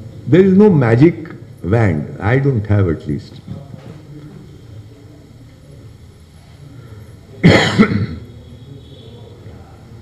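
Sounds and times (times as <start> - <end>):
man coughing: 7.4 - 8.3.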